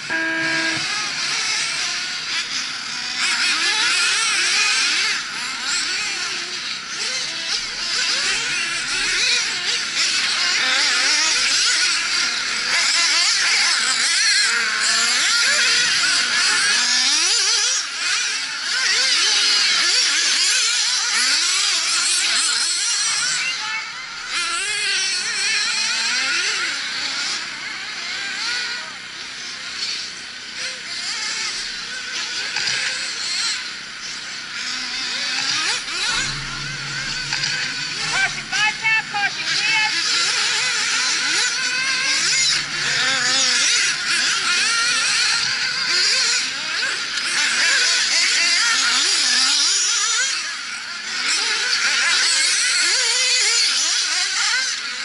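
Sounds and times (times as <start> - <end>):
rc buggy engines screaming: 0.0 - 55.0.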